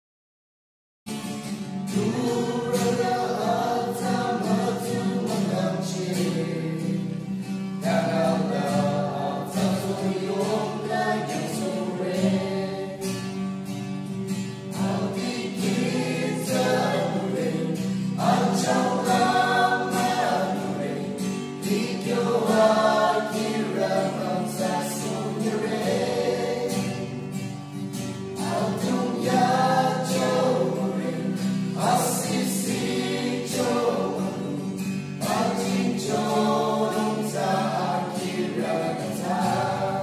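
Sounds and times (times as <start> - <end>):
strummed acoustic guitar: 1.1 - 40.0
group singing a gospel song: 1.8 - 40.0.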